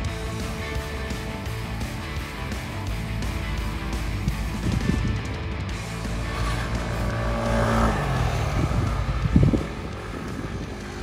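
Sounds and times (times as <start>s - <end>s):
background music with guitar: 0.0s - 11.0s
scooter engine passing: 2.6s - 11.0s.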